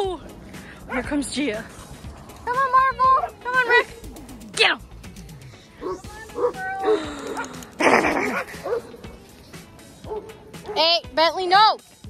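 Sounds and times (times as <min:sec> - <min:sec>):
music: 0:00.0 - 0:12.0
dogs barking and yipping: 0:01.7 - 0:04.6, 0:05.8 - 0:11.1.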